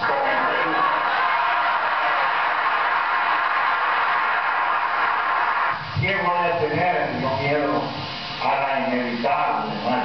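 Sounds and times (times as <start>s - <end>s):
audience applauding: 0.3s - 5.8s.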